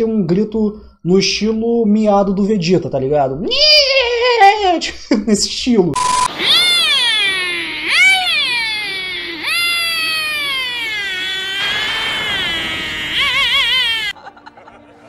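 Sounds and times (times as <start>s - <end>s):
high-pitched falling scream: 6.0s - 14.2s.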